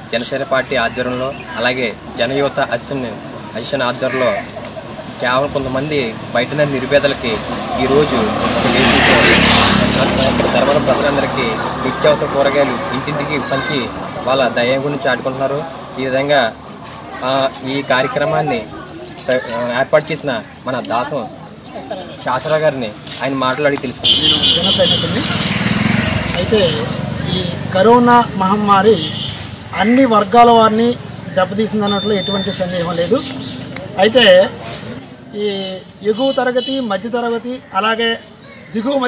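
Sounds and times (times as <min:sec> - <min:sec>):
crowd voices: 0:00.0 - 0:36.3
motor vehicle passing close: 0:04.8 - 0:17.6, 0:23.8 - 0:31.7.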